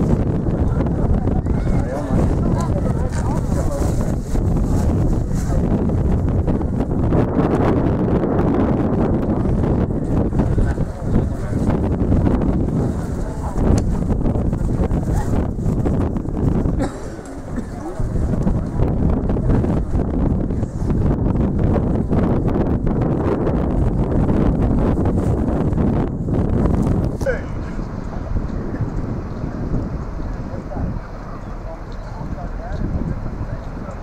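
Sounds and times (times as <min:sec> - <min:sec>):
diesel locomotive engine rumble: 0:00.0 - 0:34.0
wind buffeting microphone: 0:00.0 - 0:34.0.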